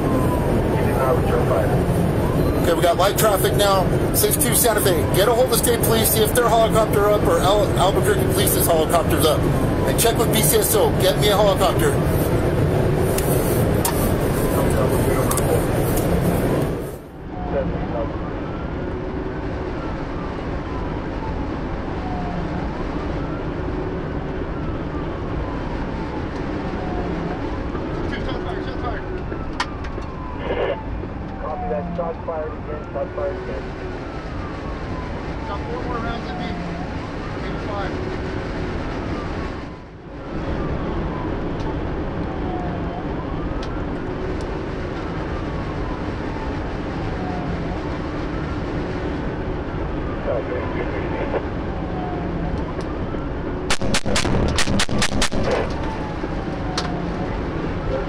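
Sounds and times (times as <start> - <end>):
police siren wailing: 0.0 - 58.0
road and wind noise: 0.0 - 58.0.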